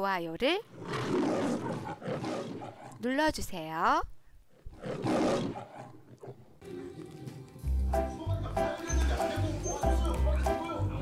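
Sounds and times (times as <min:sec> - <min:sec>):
lion roar: 0:00.7 - 0:03.0, 0:04.6 - 0:07.1.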